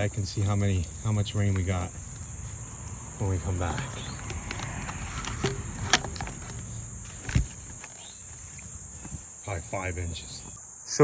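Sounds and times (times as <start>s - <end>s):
crickets chirring: 0.0s - 11.0s
plastic knocks and rustles: 4.2s - 8.0s.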